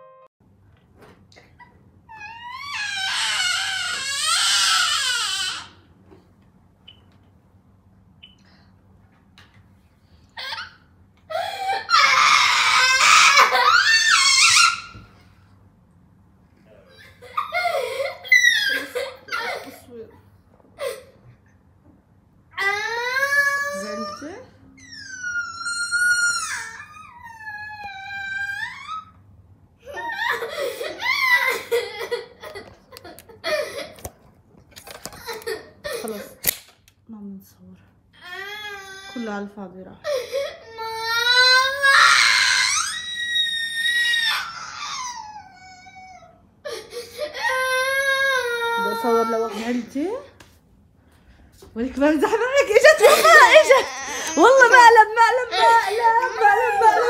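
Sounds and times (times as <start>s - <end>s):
girl crying loudly: 2.2s - 5.7s, 11.3s - 14.9s, 17.2s - 20.0s, 22.6s - 24.4s, 29.8s - 34.1s, 40.0s - 49.9s, 52.7s - 57.0s.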